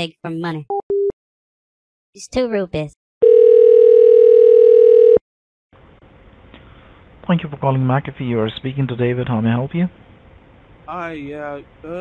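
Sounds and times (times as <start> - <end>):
steady telephone tone: 3.2 - 5.2.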